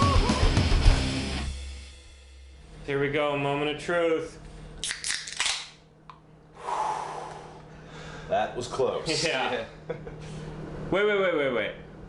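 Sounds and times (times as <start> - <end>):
beer can tabs popping open: 4.8 - 6.2.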